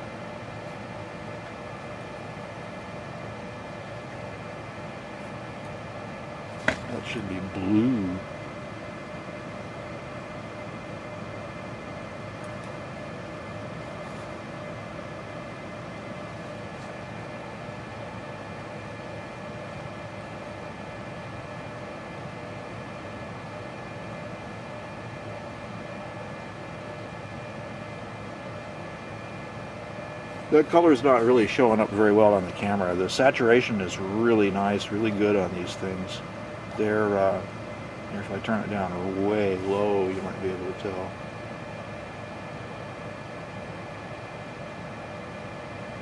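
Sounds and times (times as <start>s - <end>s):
faint hum tones: 0.0s - 46.0s.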